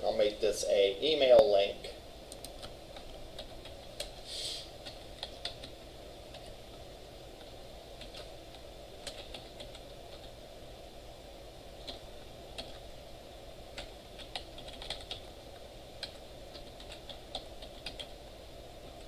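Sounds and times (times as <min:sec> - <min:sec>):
low background hum: 0:00.0 - 0:19.0
typing on computer keyboard: 0:02.3 - 0:04.2, 0:04.8 - 0:06.5, 0:08.0 - 0:08.3, 0:09.0 - 0:10.3, 0:11.8 - 0:12.8, 0:13.7 - 0:15.3, 0:16.0 - 0:18.2.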